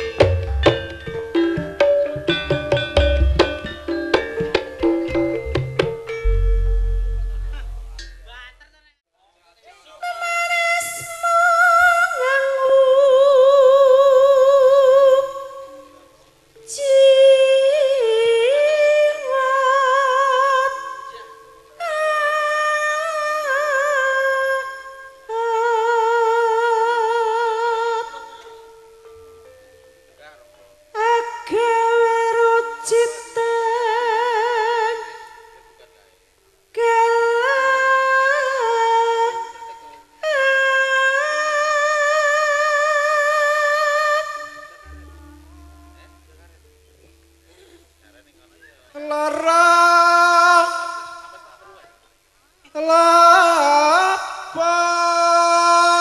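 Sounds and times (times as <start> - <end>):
faint low accompaniment: 0.4 - 8.9, 44.8 - 49.4
woman singing a long high note: 10.1 - 16.1, 16.7 - 28.9, 30.9 - 35.6, 36.7 - 46.6, 49.0 - 51.8, 52.7 - 56.0.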